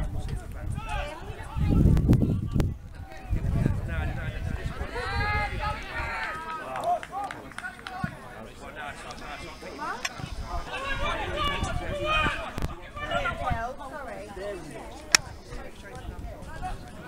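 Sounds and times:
people shouting: 0:10.6 - 0:13.6.

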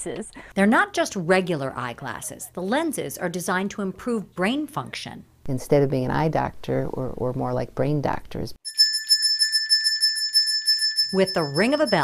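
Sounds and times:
small metal bell ringing: 0:08.7 - 0:12.0.

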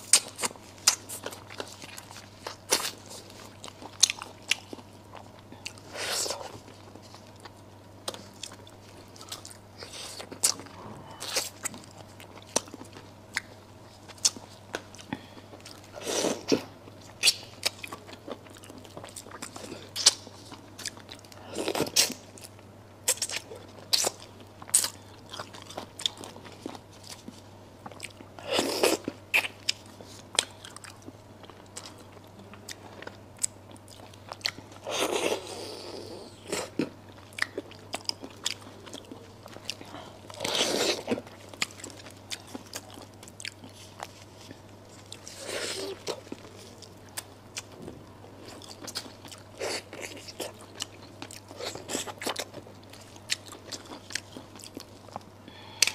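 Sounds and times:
crunching and chewing: 0:00.0 - 0:55.9.

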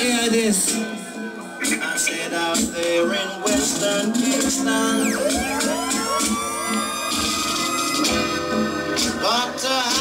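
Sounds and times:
reggae dub music: 0:00.0 - 0:10.0
dub siren whoops: 0:04.4 - 0:08.4.

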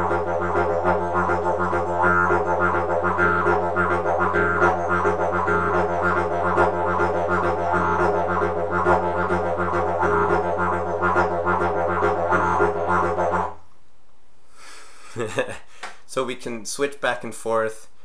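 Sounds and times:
didgeridoo drone: 0:00.0 - 0:13.6.

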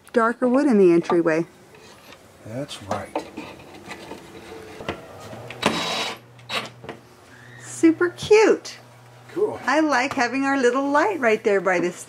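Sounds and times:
cordless driver whirring: 0:03.8 - 0:06.8.

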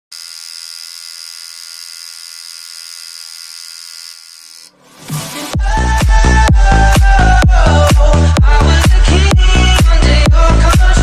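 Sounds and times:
tattoo machine buzzing: 0:00.1 - 0:04.7
electronic dance music: 0:05.0 - 0:11.0.

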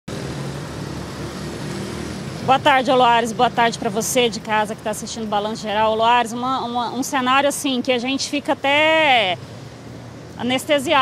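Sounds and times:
background rush: 0:00.1 - 0:11.0.

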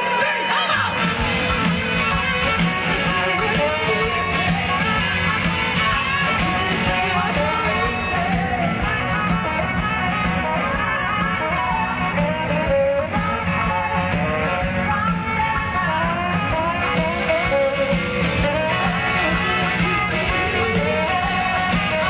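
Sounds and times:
live rock band playing: 0:00.0 - 0:22.0
saxophone melody: 0:00.0 - 0:22.0.

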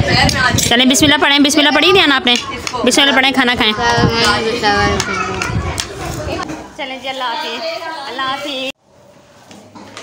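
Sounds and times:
children's voices: 0:00.0 - 0:08.8
people chattering: 0:00.0 - 0:08.8.

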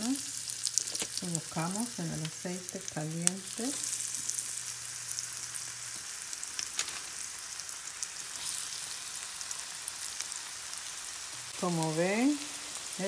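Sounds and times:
food sizzling in oil: 0:00.0 - 0:13.0
oil crackling: 0:00.0 - 0:13.0.

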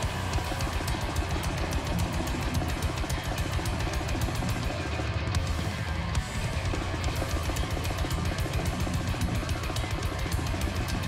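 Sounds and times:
metal band playing live: 0:00.0 - 0:11.0
rapid drum hits: 0:00.0 - 0:11.0.

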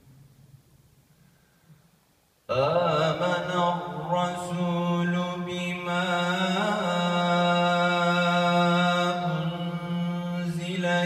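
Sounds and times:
man chanting melodically into a microphone: 0:02.5 - 0:11.0.

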